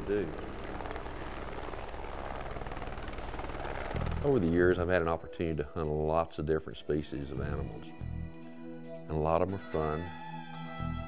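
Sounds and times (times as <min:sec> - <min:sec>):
helicopter rotor and engine: 0:00.0 - 0:04.6.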